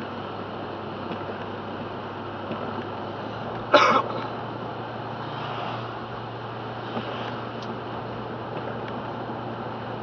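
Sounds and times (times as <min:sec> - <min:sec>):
car engine hum: 0:00.0 - 0:10.0
tyres hissing on wet pavement: 0:00.9 - 0:10.0
small tick: 0:07.0 - 0:07.8.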